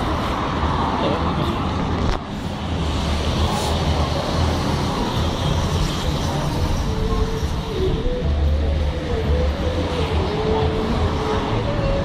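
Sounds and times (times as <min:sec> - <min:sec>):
cars passing on road: 0:00.0 - 0:12.0.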